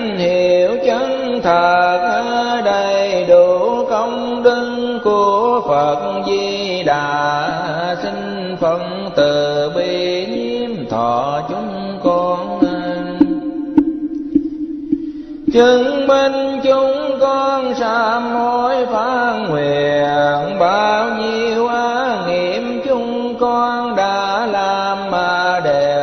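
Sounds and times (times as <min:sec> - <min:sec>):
monk chanting melodically: 0:00.0 - 0:13.6, 0:15.4 - 0:26.0.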